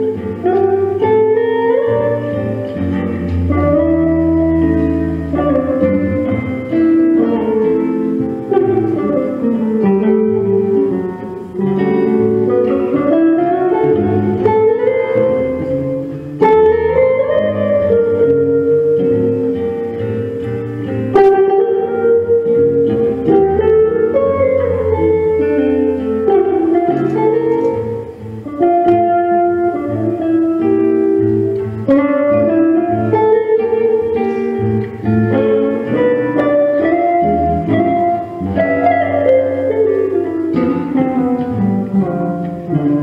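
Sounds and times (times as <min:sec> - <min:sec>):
jazz guitar playing: 0:00.0 - 0:43.0.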